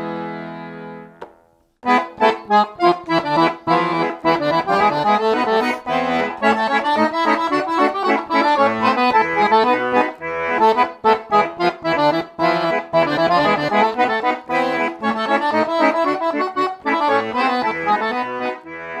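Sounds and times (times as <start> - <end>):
accordion melody with bass notes: 0.0 - 19.0.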